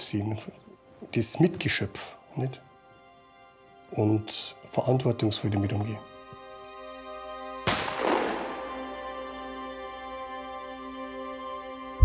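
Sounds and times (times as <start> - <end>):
background music: 0.0 - 12.0
gunshot with echo: 7.7 - 8.9.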